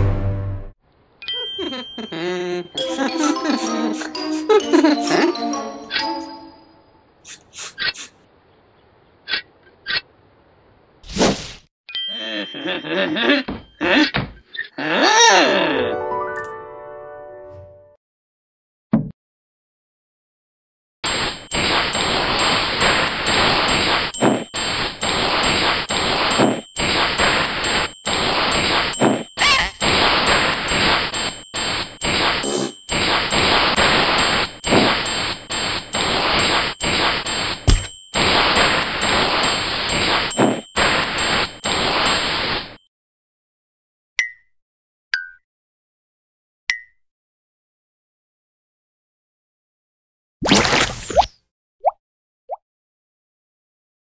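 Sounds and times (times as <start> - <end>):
cartoon swish with rising squeak: 29.0 - 30.4.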